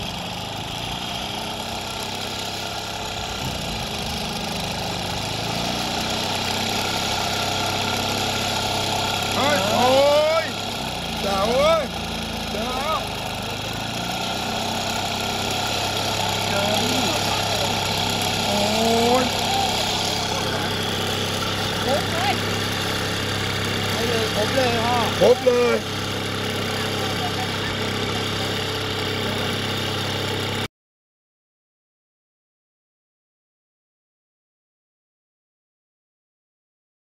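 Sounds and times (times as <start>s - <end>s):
small engine running steadily: 0.0s - 30.7s.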